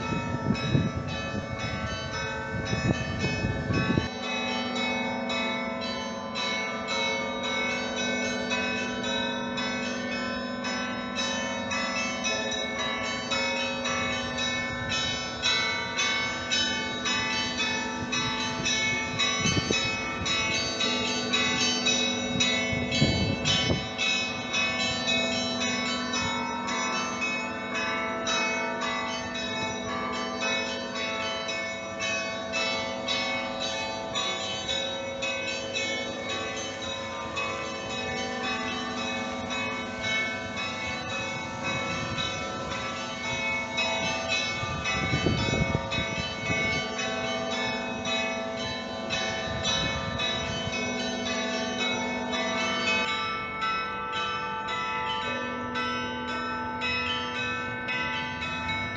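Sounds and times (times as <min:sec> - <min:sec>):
large bells low ringing tone: 0:00.0 - 0:58.9
small church bells ringing quickly: 0:00.0 - 0:58.9.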